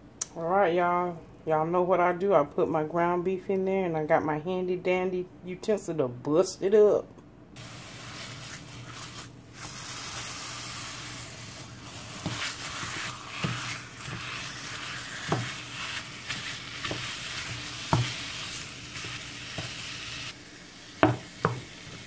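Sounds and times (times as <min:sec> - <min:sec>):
meat sizzling in a skillet: 0:07.6 - 0:22.0.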